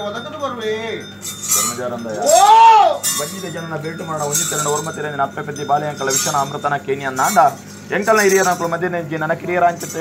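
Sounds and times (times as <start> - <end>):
metal jingling and clinking: 0.0 - 10.0
man exclaiming: 2.2 - 3.0.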